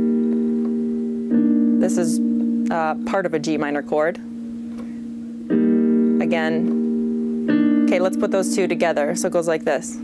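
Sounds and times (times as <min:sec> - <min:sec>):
keyboard piano notes and chord: 0:00.0 - 0:10.0.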